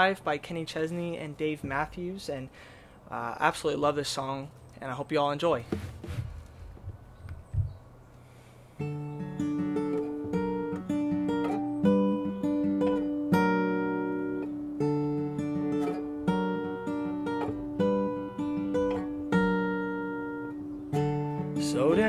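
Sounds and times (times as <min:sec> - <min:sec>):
acoustic guitar picking chords: 0:08.7 - 0:22.0.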